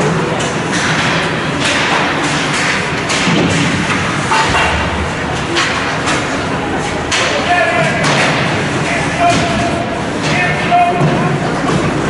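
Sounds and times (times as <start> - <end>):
echoing ice rink noise: 0.0 - 12.0.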